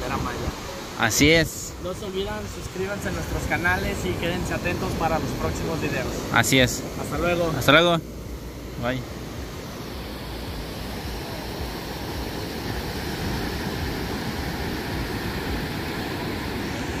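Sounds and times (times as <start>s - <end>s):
small waves washing up beach: 0.0s - 17.0s.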